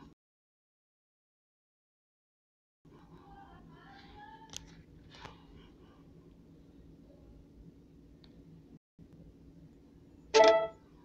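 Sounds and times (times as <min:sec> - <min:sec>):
faint room hum: 0:02.9 - 0:11.0
bright pitched tone: 0:10.4 - 0:10.8.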